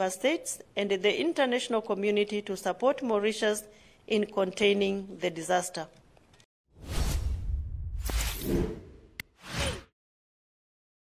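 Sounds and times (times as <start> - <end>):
whoosh with deep bass: 6.8 - 8.9.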